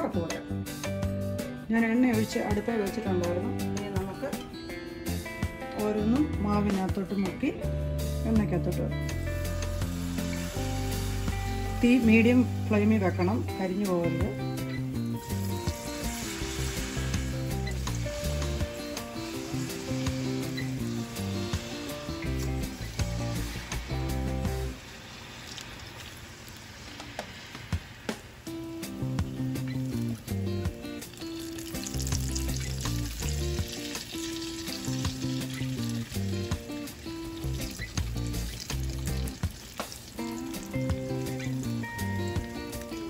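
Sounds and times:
background music with low notes: 0.0s - 25.0s, 26.9s - 43.0s
food deep-frying in oil: 9.1s - 43.0s.

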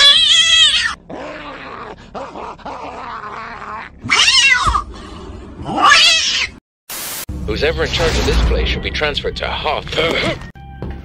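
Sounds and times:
static burst: 6.9s - 8.6s.

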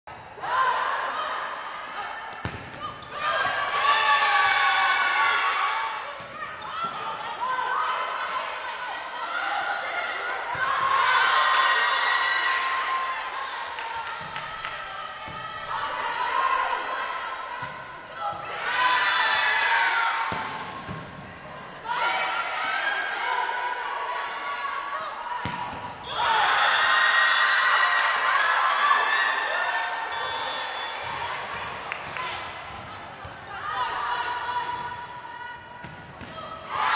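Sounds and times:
players shouting and cheering: 0.1s - 36.9s.

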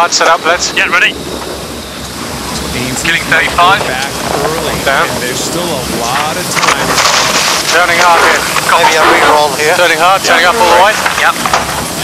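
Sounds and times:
water rushing: 0.0s - 12.0s.

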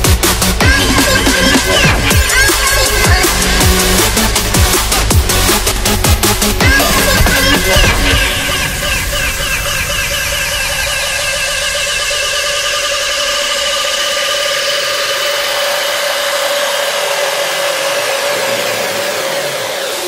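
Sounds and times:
distorted synth tone: 0.0s - 20.0s.

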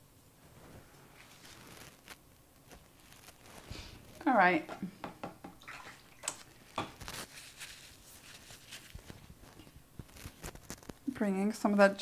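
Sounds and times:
water swishing: 5.6s - 6.7s.

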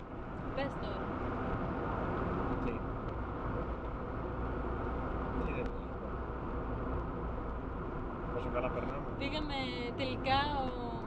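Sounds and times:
car engine rumble: 0.0s - 11.0s
tyre road noise: 0.0s - 11.0s.

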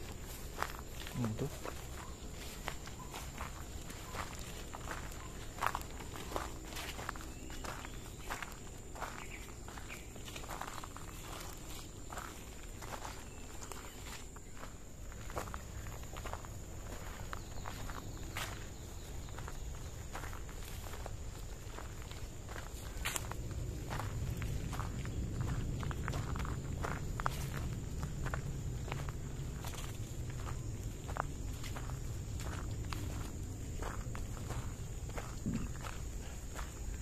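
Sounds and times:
footsteps through dry leaves and grass: 0.0s - 37.0s
rustling vegetation: 0.0s - 37.0s.

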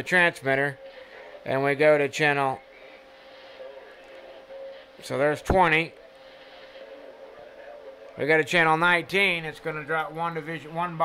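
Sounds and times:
constant mid-pitched tone: 0.0s - 11.0s
faint background hum: 0.0s - 11.0s.

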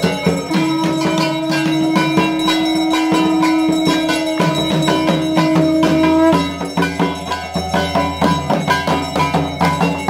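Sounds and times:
conch shell blown: 0.0s - 7.0s
bells ringing: 0.0s - 10.0s
drum beating quickly: 0.0s - 10.0s.

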